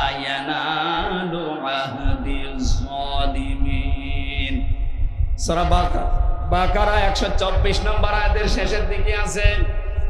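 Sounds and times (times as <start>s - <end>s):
man chanting over loudspeaker: 0.0s - 10.0s
low rumble: 1.9s - 10.0s.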